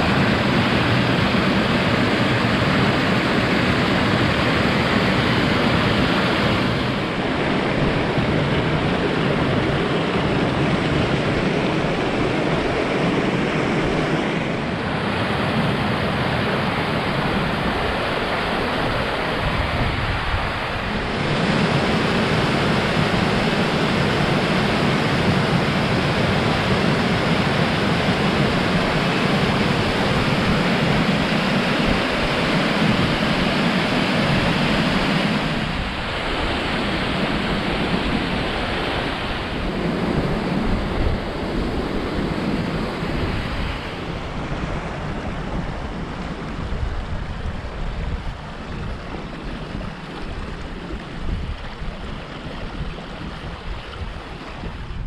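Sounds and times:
stream rushing over stones: 0.0s - 55.0s.

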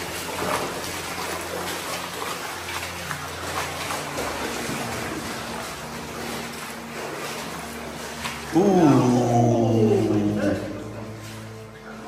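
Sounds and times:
flowing water rushing: 0.0s - 12.0s
water splashing under wading feet: 0.0s - 12.0s.

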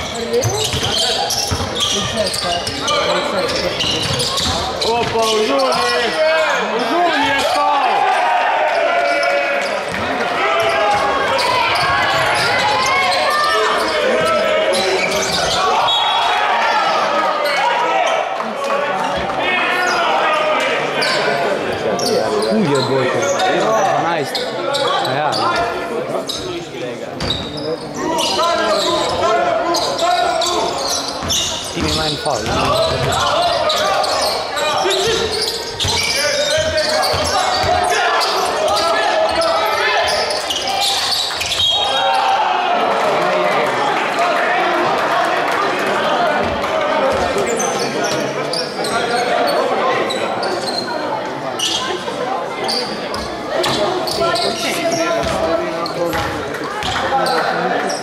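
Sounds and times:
players and spectators talking: 0.0s - 58.0s.

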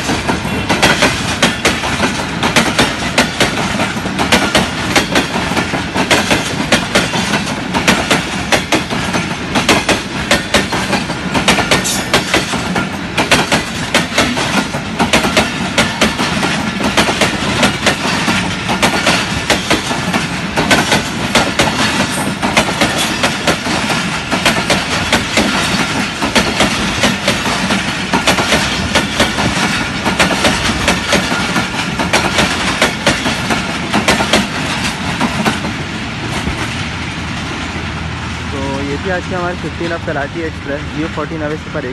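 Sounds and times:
train wheels clicking over rail joints: 0.0s - 37.8s.

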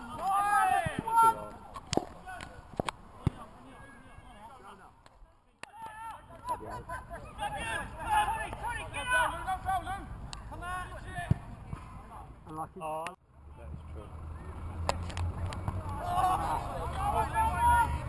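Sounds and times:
distant shouting and calling: 0.0s - 12.5s, 13.3s - 18.0s
football being kicked: 0.7s - 3.6s.

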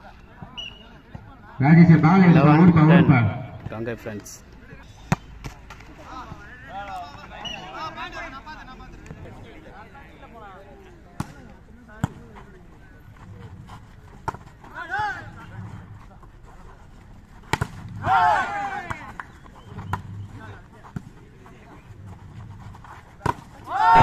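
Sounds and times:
people shouting: 18.0s - 19.0s, 23.6s - 24.0s.

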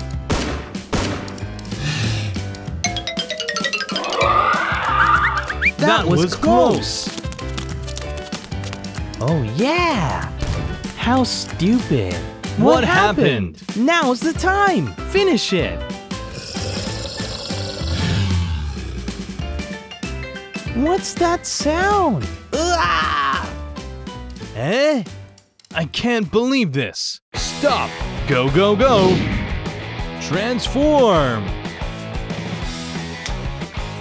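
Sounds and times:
background music: 0.0s - 34.0s
growling dinosaur roar: 4.0s - 5.3s, 16.2s - 19.4s.

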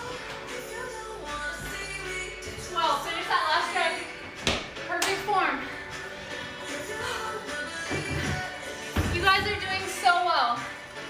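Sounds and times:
background music with singing: 0.0s - 11.0s.

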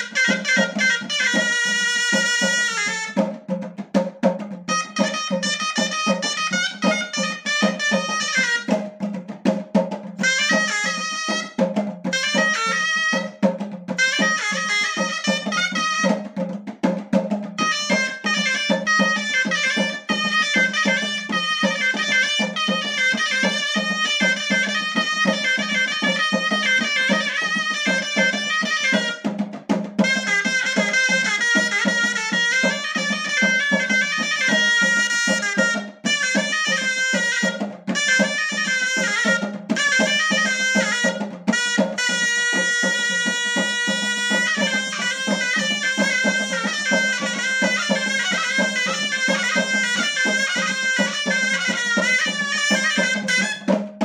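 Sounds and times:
double-reed shawm melody: 0.0s - 3.7s, 4.3s - 54.0s
steady percussion beat: 0.0s - 54.0s.

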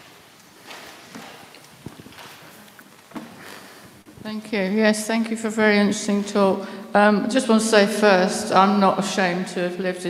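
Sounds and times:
footsteps on wooden floor: 0.0s - 4.2s.

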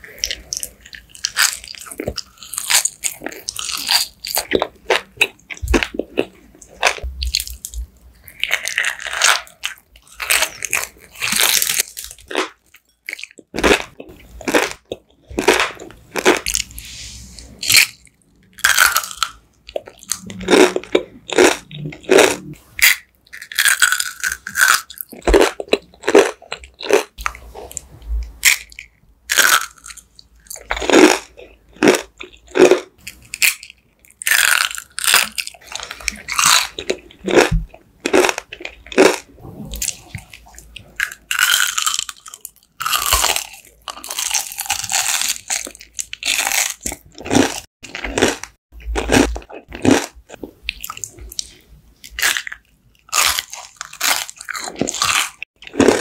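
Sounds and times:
crunchy chewing: 0.1s - 16.8s, 17.6s - 27.8s, 28.4s - 56.0s.

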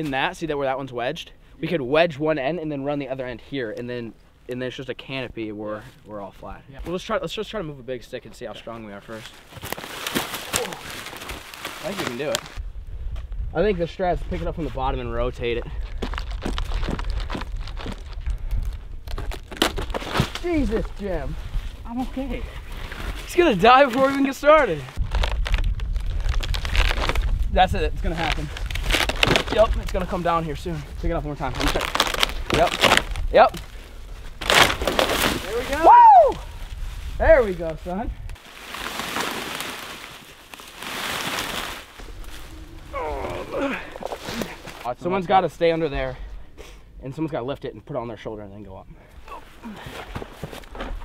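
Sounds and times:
footsteps crunching through dry leaves: 9.0s - 12.6s, 15.8s - 18.8s, 36.5s - 43.1s
bark and leaves crackling: 9.1s - 12.6s, 30.8s - 44.9s.

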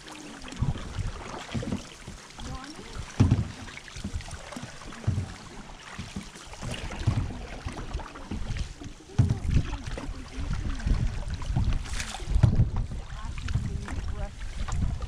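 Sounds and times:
water lapping against canoe hull: 0.0s - 15.0s
wind buffeting microphone: 0.5s - 1.8s, 6.6s - 15.0s.

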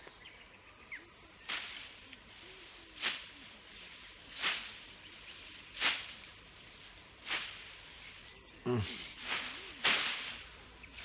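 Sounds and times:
scythe swishing through grass: 3.0s - 3.4s, 4.3s - 4.9s, 5.6s - 6.3s, 7.2s - 7.8s, 8.7s - 11.0s.

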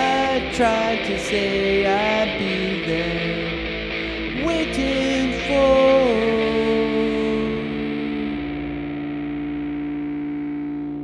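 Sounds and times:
distorted electric guitar chord ringing: 0.0s - 11.0s.

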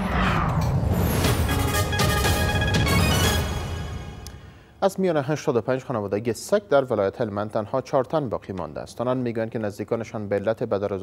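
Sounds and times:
whoosh sweeping down in pitch: 0.0s - 1.5s
low rumble: 0.0s - 1.7s
musical tones: 0.6s - 4.4s.

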